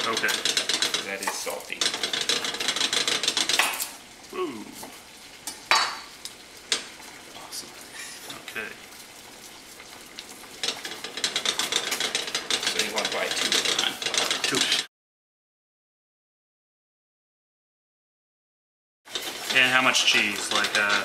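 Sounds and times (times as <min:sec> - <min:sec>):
wire whisk beating liquid: 0:00.0 - 0:04.0, 0:04.8 - 0:14.9, 0:19.1 - 0:21.0.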